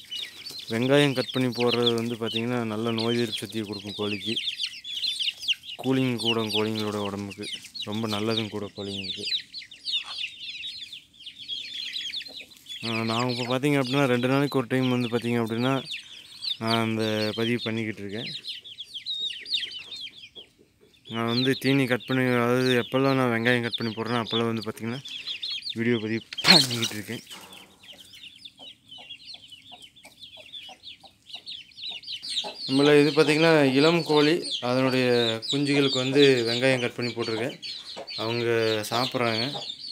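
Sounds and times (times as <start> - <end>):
chicks peeping: 0.0 - 39.9
low chicken clucks: 0.0 - 39.9.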